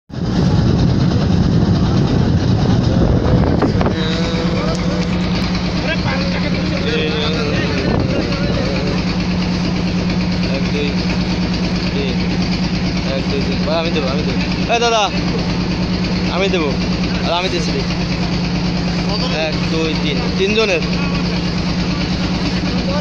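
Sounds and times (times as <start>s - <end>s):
boat engine droning: 0.1s - 23.0s
water washing along hull: 0.1s - 23.0s.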